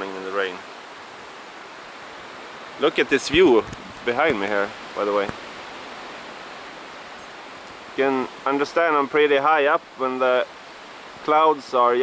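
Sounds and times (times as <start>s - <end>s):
wind rushing through trees: 0.0s - 12.0s.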